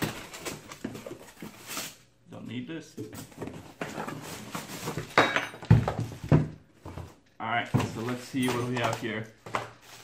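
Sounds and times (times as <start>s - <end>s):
cardboard flaps rustling and scraping: 3.1s - 5.2s.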